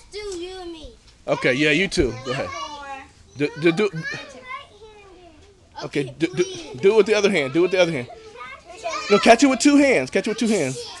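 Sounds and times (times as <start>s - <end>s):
child's voice speaking: 0.0s - 1.0s, 2.0s - 6.8s, 7.5s - 9.4s, 10.4s - 11.0s.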